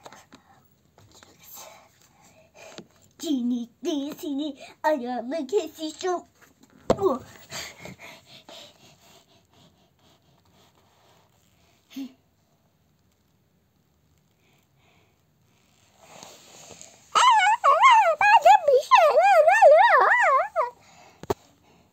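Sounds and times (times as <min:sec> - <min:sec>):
high-pitched warbling voice: 0:17.2 - 0:20.7.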